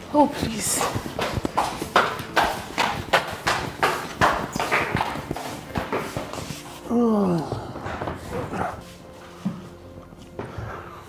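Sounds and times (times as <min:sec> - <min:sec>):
footsteps on hard floor: 0:00.0 - 0:11.0.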